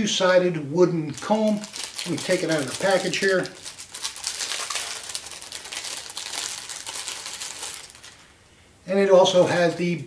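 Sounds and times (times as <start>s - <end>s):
packaging crinkling and rustling: 1.0s - 8.3s.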